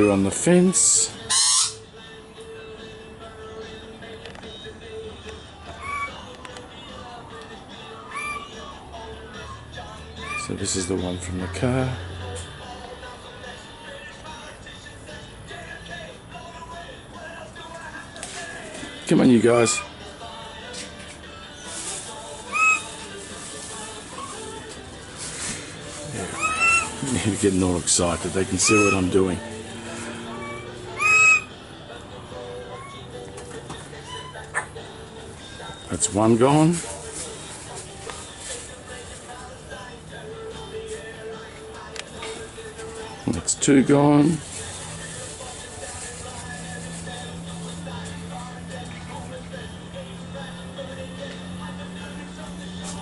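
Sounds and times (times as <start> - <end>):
birds whistling fluted notes: 1.2 - 1.9, 5.8 - 6.2, 8.1 - 8.6, 22.4 - 23.1, 26.0 - 29.3, 30.3 - 31.6.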